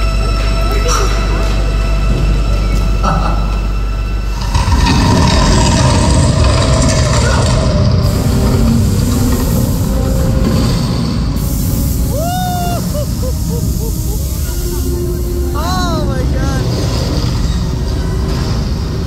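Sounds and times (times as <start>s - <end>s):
loud low rumble: 3.0s - 18.9s.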